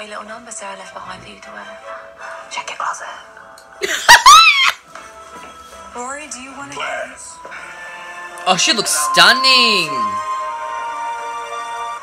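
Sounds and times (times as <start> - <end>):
background music: 0.0 - 12.0
man squealing with laughter: 3.8 - 4.8.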